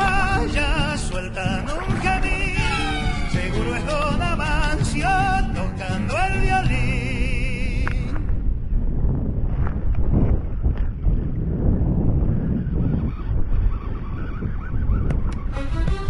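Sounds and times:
song with singing: 0:00.0 - 0:08.3
wind buffeting microphone: 0:00.0 - 0:16.0.

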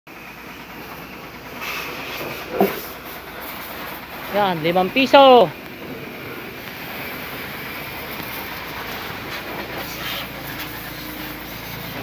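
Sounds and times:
high-pressure sprayer hissing: 0:00.2 - 0:12.0.

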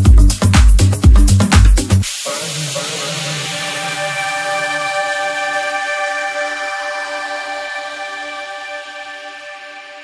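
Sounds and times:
kick drum and bass: 0:00.0 - 0:02.1
soft sustained synth tones: 0:03.0 - 0:10.0.

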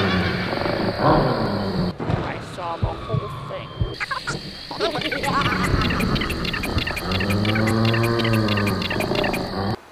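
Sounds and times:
insects chirping: 0:00.0 - 0:09.9.

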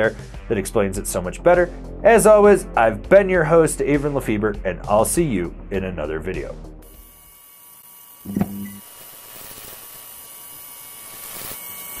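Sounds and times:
neon sign buzzing flicker: 0:06.8 - 0:12.0
neon sign humming with hiss: 0:06.8 - 0:12.0.

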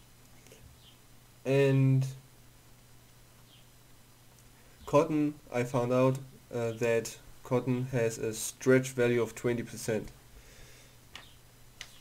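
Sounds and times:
background hiss: 0:00.0 - 0:12.0
low steady hum: 0:00.0 - 0:12.0.

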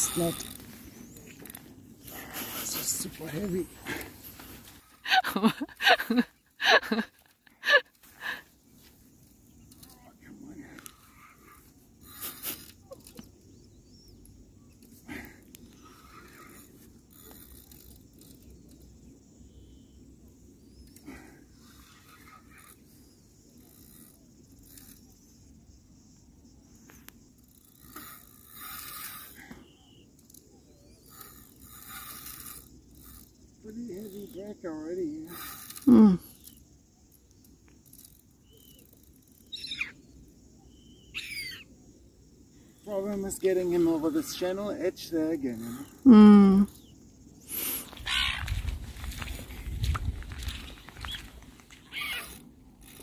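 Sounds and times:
faint low wind: 0:00.0 - 0:53.0
man laughing: 0:05.0 - 0:08.4.

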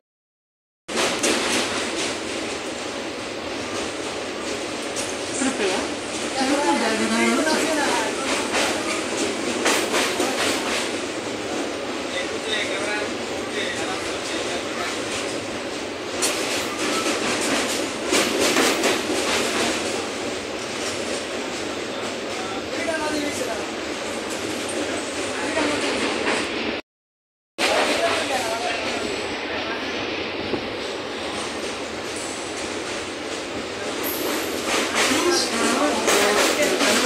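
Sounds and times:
wheels clacking on track: 0:00.9 - 0:13.0, 0:13.6 - 0:23.2, 0:31.2 - 0:37.0
train rumble and rattle: 0:00.9 - 0:26.8, 0:27.6 - 0:37.0.

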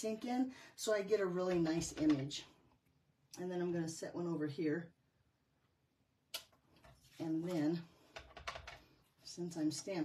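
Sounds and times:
faint handling sounds: 0:06.6 - 0:09.9.

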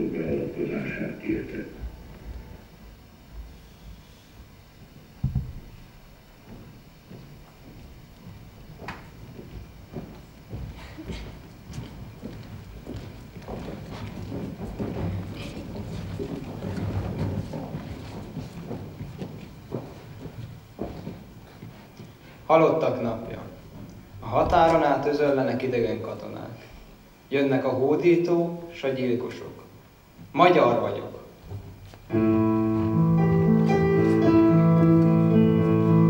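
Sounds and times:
footsteps and shuffling: 0:01.3 - 0:27.2, 0:29.8 - 0:36.0
thump: 0:05.2 - 0:05.7.

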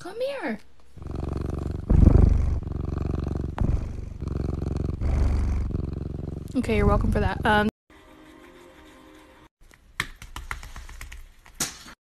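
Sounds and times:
cat purring loudly: 0:01.0 - 0:07.7.

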